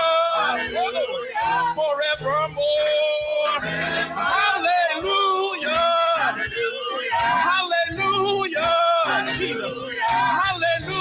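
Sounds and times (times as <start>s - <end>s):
choir singing in harmony: 0.0s - 1.9s, 3.4s - 11.0s
low musical accompaniment: 0.0s - 11.0s.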